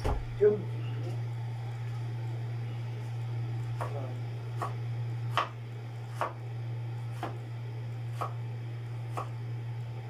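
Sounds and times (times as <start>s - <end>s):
steady low hum: 0.0s - 10.0s
knife chopping vegetables: 3.7s - 6.4s, 7.1s - 7.4s, 8.1s - 8.4s, 9.0s - 9.4s.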